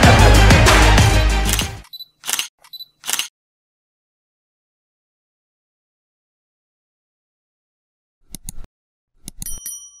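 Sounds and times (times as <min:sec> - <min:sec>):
sharp clicks: 0:01.5 - 0:03.3
bright bell ding: 0:09.4 - 0:10.0.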